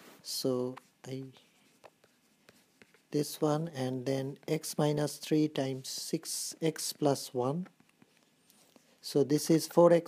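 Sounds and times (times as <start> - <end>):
stylus scratching on tablet: 0.6 - 10.0.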